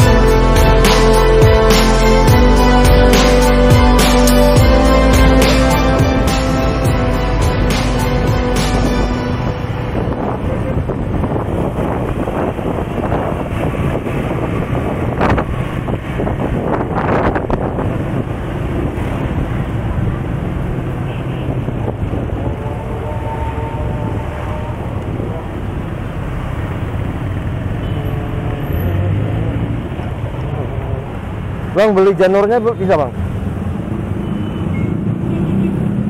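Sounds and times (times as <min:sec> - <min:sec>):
wind noise on microphone: 0:08.1 - 0:27.0.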